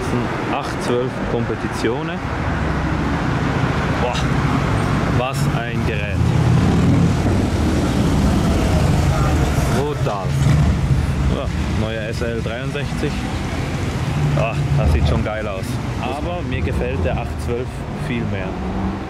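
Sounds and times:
city traffic: 0.0s - 19.0s.

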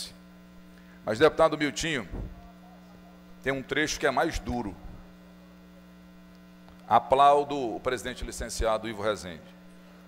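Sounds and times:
electrical mains hum: 0.0s - 10.0s
man talking: 1.0s - 2.2s, 3.4s - 4.9s, 6.9s - 9.6s.

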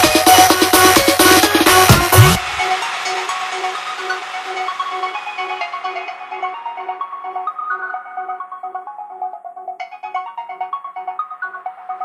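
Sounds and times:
electro house synth melody: 0.0s - 12.0s.

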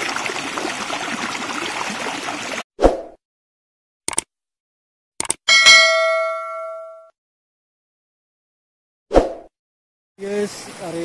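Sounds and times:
quick clicks: 4.1s - 4.3s, 5.2s - 5.4s
bright bell ding: 5.5s - 7.1s.

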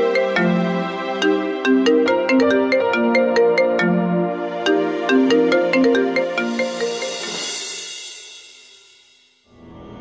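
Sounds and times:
bright chiming melody: 0.0s - 7.8s.

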